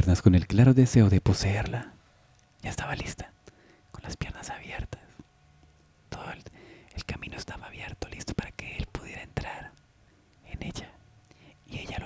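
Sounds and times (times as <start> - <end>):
person whispering: 1.3 - 2.0, 2.6 - 5.2, 6.1 - 9.8, 10.4 - 12.0.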